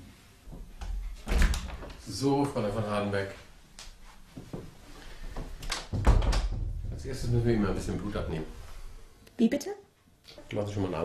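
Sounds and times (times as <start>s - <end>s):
door knocks and shuffles: 5.8s - 7.3s
door heavy thump: 5.9s - 7.3s.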